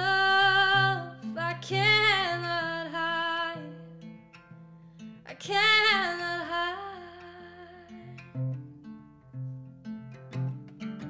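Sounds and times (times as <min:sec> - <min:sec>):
soft acoustic guitar: 0:00.0 - 0:11.0.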